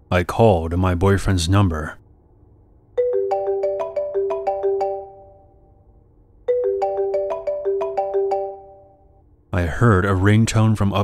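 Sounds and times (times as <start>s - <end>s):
mobile phone melodic ringtone: 3.0s - 5.8s, 6.5s - 9.2s.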